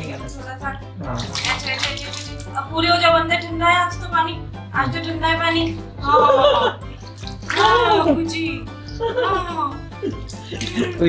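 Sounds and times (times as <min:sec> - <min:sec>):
water splashing in plastic basin: 0:01.0 - 0:02.6, 0:06.8 - 0:08.3, 0:10.2 - 0:11.0.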